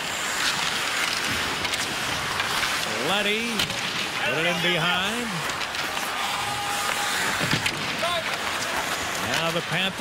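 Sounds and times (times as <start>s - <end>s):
crowd noise: 0.0s - 10.0s
skates scraping ice: 0.0s - 10.0s.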